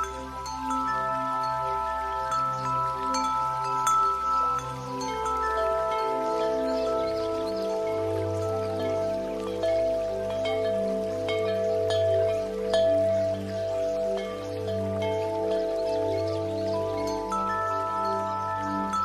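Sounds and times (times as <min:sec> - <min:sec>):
ambient background music: 0:00.0 - 0:19.0.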